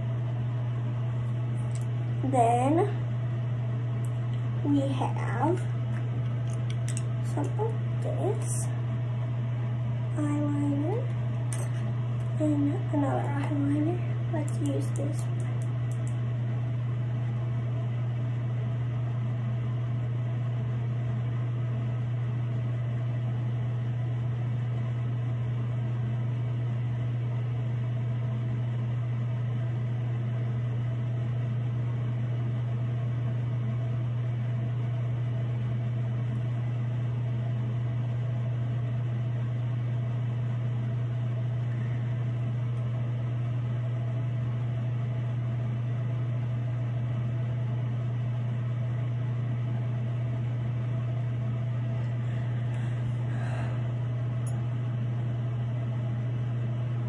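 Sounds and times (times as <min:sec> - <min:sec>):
steady low hum: 0:00.0 - 0:57.0.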